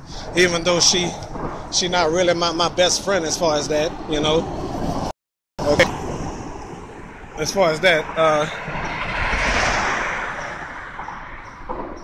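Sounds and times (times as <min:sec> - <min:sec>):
road traffic passing: 0:00.0 - 0:12.0.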